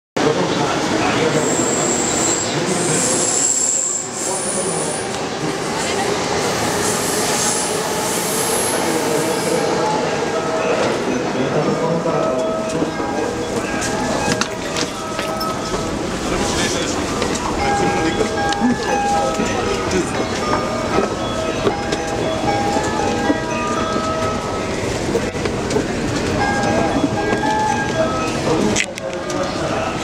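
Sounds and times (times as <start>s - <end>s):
passengers' voices: 0.2s - 30.0s
subway train din: 0.2s - 30.0s.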